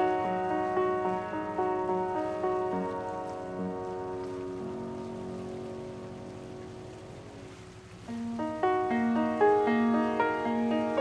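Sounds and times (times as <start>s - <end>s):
steady hiss: 0.0s - 11.0s
upright piano notes: 0.0s - 11.0s.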